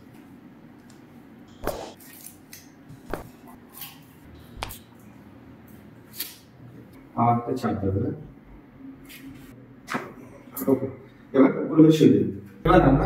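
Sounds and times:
faint room hum: 0.0s - 13.0s.

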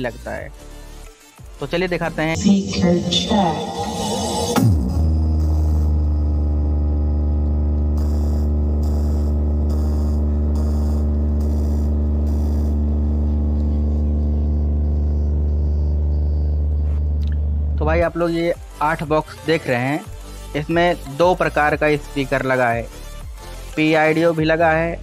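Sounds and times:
deep buzzy bass tone: 2.0s - 19.3s.

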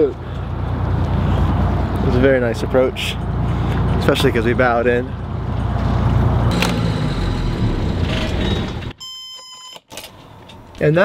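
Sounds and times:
diesel engine idling: 0.1s - 9.0s.

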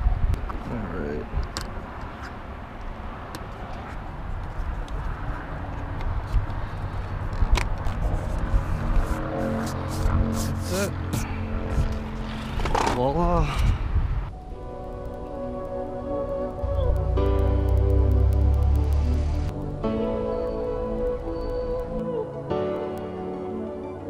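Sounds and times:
background music with held chord: 14.3s - 24.0s.

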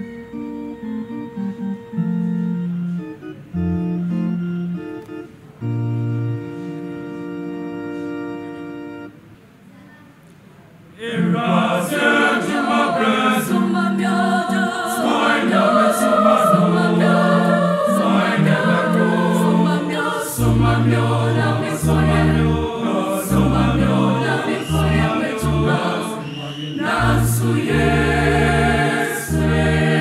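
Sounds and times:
keyboard accompaniment: 0.0s - 9.6s, 11.0s - 30.0s
choir singing gospel: 11.0s - 30.0s
deep bass line: 27.0s - 30.0s.

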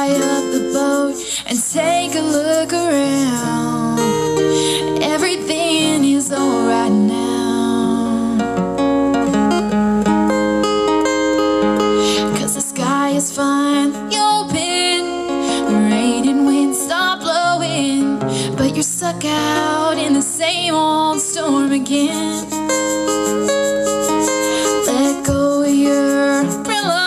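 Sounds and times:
woman singing: 0.0s - 8.8s, 12.0s - 27.0s
acoustic guitar strumming: 0.0s - 27.0s.

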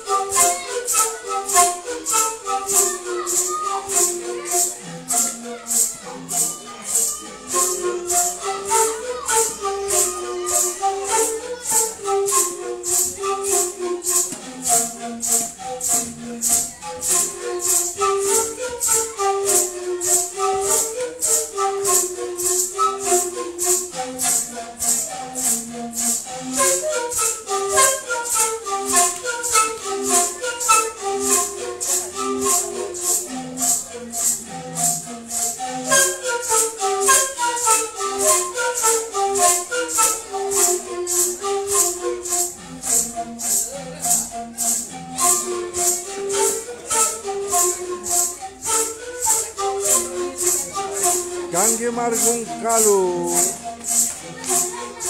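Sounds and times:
panpipes melody: 0.0s - 54.8s
maracas shaking: 0.0s - 55.0s.

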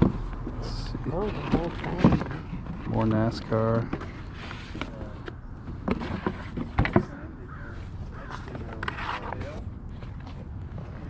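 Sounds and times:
cardboard boxes handled: 0.0s - 11.0s.

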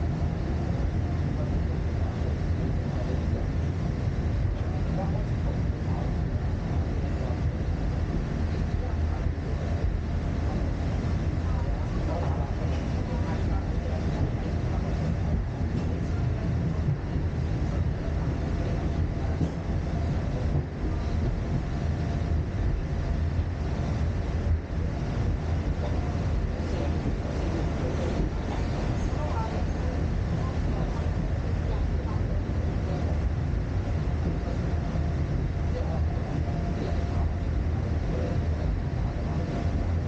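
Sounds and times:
tram car low rumble: 0.0s - 40.0s.

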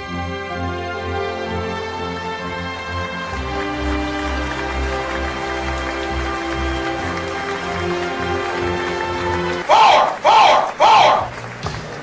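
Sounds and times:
background music: 0.0s - 11.9s
crowd shouting: 9.6s - 11.4s.

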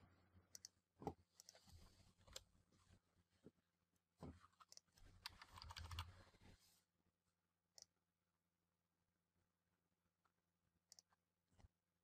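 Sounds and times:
computer keyboard and mouse clicks: 4.6s - 6.1s.

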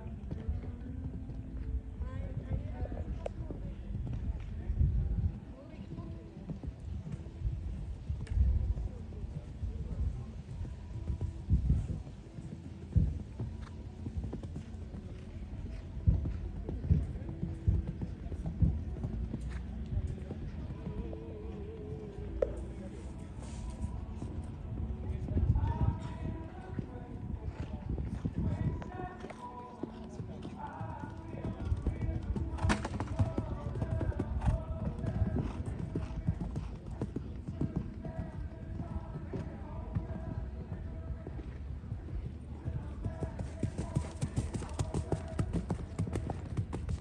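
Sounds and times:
horse hooves on sand: 0.0s - 47.0s.

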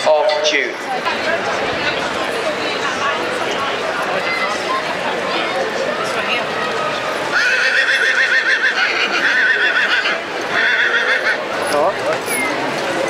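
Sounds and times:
horse whinnying: 7.3s - 11.4s.

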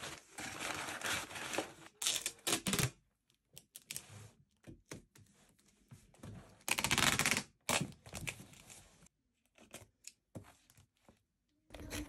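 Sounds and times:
tape crackling on cardboard: 6.7s - 8.3s.

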